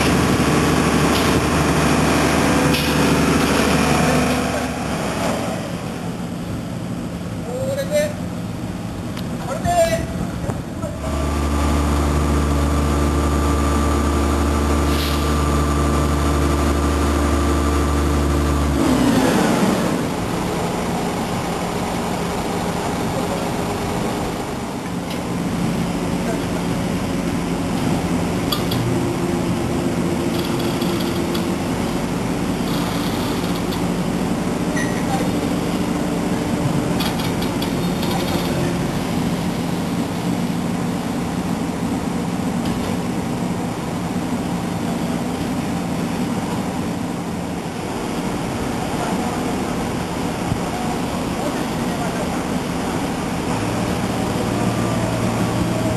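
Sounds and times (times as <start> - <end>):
crane diesel engine running: 0.0 - 55.9.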